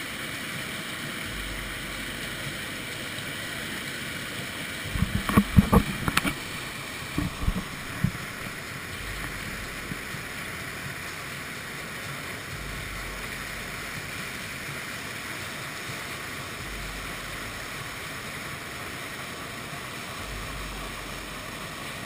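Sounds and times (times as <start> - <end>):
rushing water and spray: 0.0 - 22.0.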